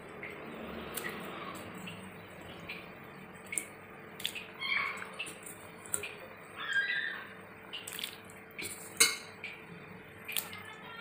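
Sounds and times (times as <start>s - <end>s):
curry bubbling in a pot: 0.0s - 11.0s
high-pitched cries: 4.6s - 5.1s, 6.6s - 7.4s.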